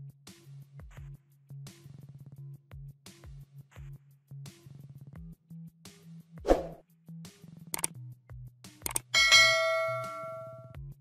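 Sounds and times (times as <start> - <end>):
notification bell ding: 9.2 - 10.6.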